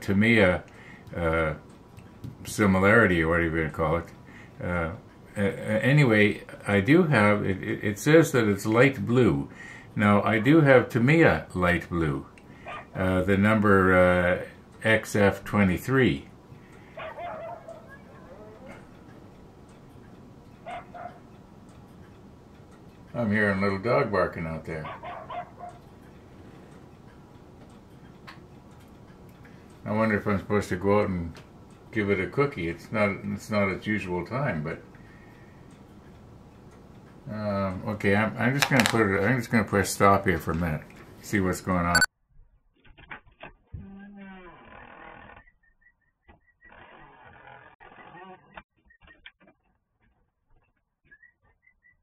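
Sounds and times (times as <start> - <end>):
small dog yipping: 12.7 - 12.9, 24.9 - 25.8
door creak: 42.9 - 45.5, 46.7 - 48.6.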